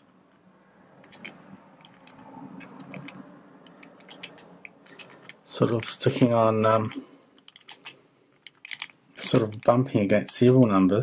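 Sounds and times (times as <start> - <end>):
padlock dial clicking: 0.9 - 9.8.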